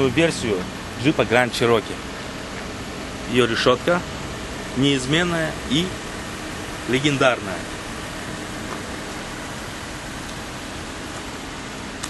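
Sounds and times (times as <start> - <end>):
constant hiss: 0.0 - 12.0.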